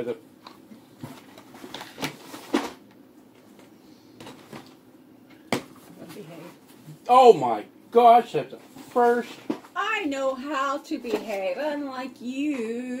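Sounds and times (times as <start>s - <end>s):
packaging rustling: 1.0s - 2.8s.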